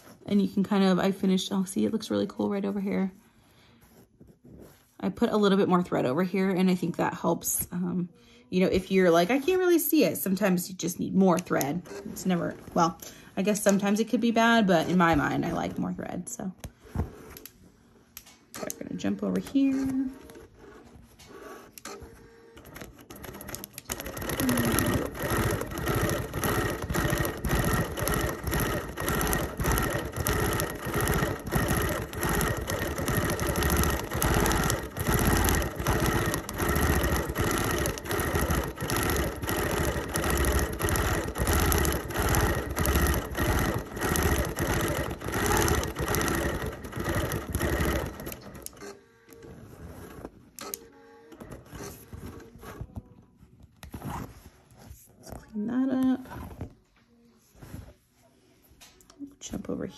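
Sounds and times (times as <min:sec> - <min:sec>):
quilting machine stitching: 0:09.0 - 0:16.0, 0:18.5 - 0:53.1.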